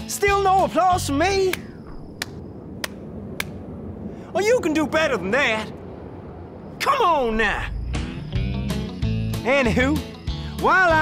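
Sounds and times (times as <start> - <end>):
slow hand clapping: 1.5 - 3.6.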